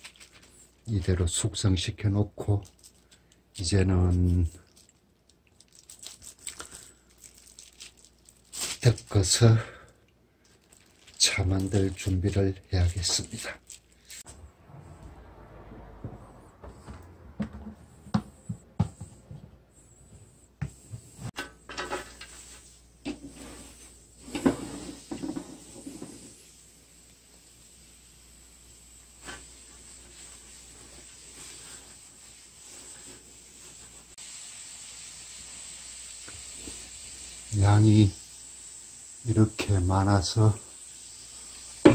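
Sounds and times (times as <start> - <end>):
leaves rustling and clattering: 10.6 - 14.2
frying pan hissing: 20.7 - 41.9.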